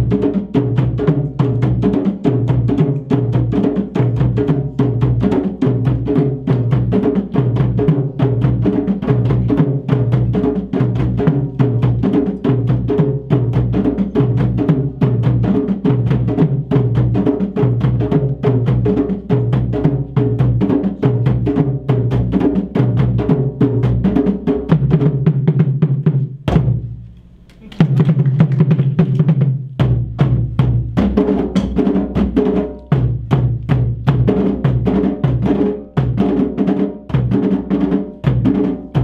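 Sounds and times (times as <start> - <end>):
hand drums played: 0.0 - 39.0
sticks striking drums: 26.5 - 29.3.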